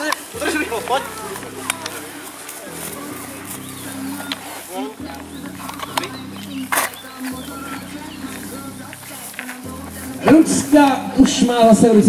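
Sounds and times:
faint voices: 0:00.0 - 0:12.0
short clicks: 0:03.8 - 0:07.6.

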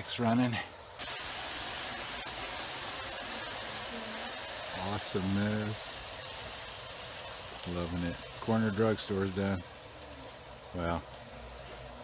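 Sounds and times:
model train rushing on track: 0:01.0 - 0:09.7.

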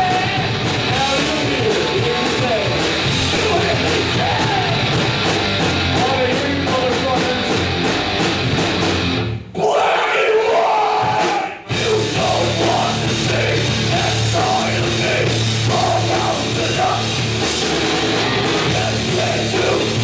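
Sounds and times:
shouted lead vocal: 0:00.0 - 0:05.0, 0:09.5 - 0:17.3, 0:18.4 - 0:20.0
bass guitar: 0:00.0 - 0:09.5, 0:11.0 - 0:20.0
drums and cymbal hits: 0:00.0 - 0:09.6, 0:10.4 - 0:20.0
distorted guitars: 0:00.0 - 0:09.8, 0:10.4 - 0:20.0.

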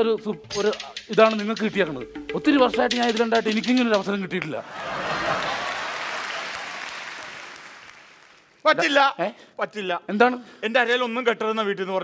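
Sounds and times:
audience applauding: 0:04.6 - 0:08.7.

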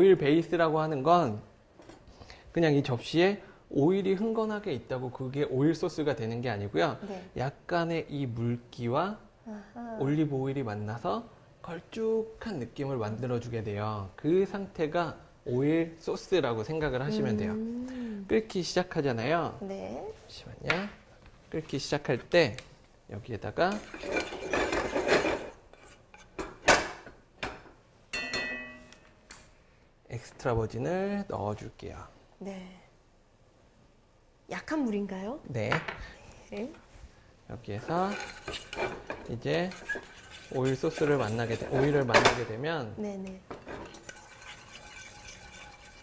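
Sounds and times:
pot scraping on stove: 0:23.6 - 0:27.2, 0:37.8 - 0:42.5, 0:43.5 - 0:46.0
kitchenware knocks: 0:26.4 - 0:28.9
kitchenware ringing clink: 0:28.1 - 0:29.1
wooden spatula stirring broth: 0:37.8 - 0:42.1, 0:43.6 - 0:46.0.

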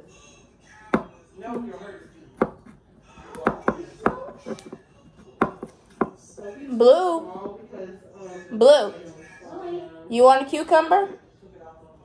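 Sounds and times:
knife slicing cucumber on countertop: 0:02.4 - 0:06.2.

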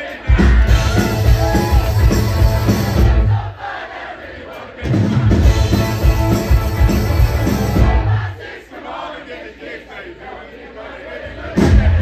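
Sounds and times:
crowd yelling and cheering: 0:00.0 - 0:12.0
rock band playing: 0:00.3 - 0:03.4, 0:04.8 - 0:08.3.

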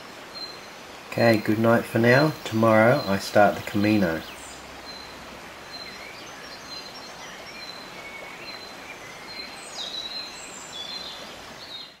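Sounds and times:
steady outdoor hiss: 0:00.0 - 0:12.0
birds chirping and whistling: 0:01.4 - 0:12.0.

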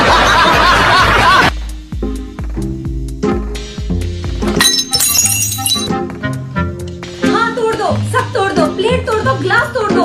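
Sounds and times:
glass breaking: 0:04.6 - 0:05.9.

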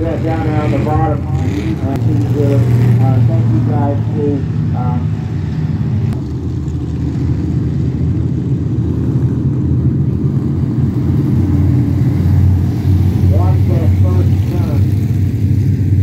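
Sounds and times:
race car engines rumbling: 0:00.0 - 0:16.0.

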